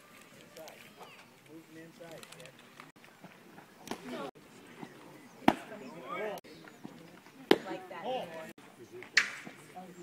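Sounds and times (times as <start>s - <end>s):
voices calling out: 0.0s - 10.0s
sharp bat crack: 9.2s - 9.6s.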